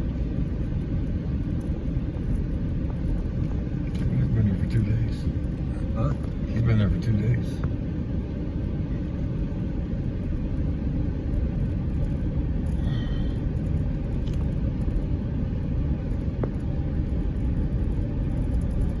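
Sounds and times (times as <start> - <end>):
vehicle engine rumble: 0.0 - 19.0.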